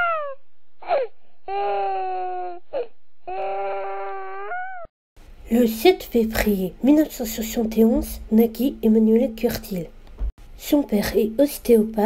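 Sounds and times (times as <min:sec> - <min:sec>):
newborn baby crying: 0:00.0 - 0:04.9.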